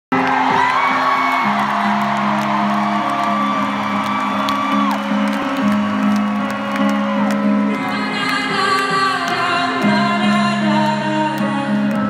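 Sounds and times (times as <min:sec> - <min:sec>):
crowd whooping and screaming: 0:00.1 - 0:08.4
live band music: 0:01.7 - 0:12.0.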